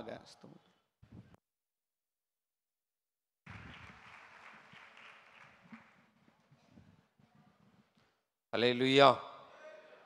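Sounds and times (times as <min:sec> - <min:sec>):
faint applause: 0:03.5 - 0:06.2.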